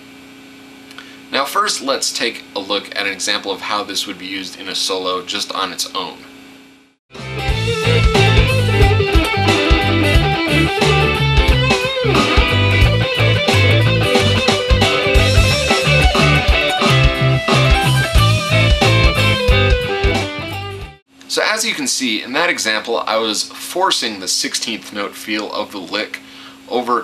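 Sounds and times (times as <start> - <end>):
electric guitar lead lick: 7.2 - 21.0
swung backing track: 7.2 - 21.0.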